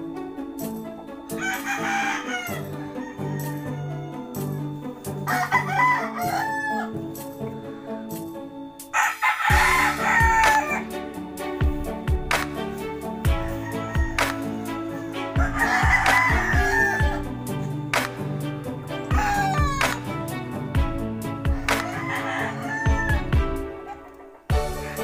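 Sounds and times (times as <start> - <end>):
background music with steady beat: 0.0 - 25.0
rooster crowing: 1.3 - 7.2, 8.9 - 11.0, 13.4 - 17.8, 18.7 - 20.0, 21.3 - 25.0.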